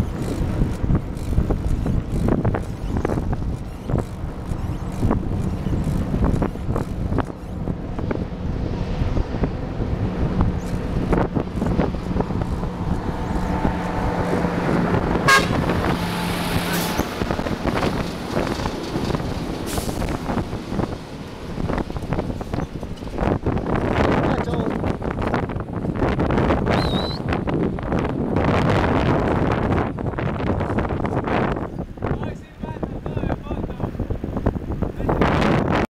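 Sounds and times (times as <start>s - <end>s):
heavy vehicle engine running: 0.0s - 26.6s
wind and road rumble: 0.0s - 35.9s.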